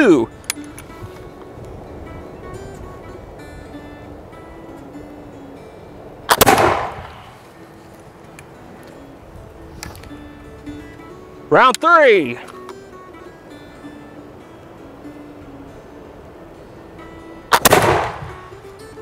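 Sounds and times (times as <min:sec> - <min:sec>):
background music: 0:00.0 - 0:19.0
musket shot: 0:06.3 - 0:07.4, 0:17.5 - 0:18.4.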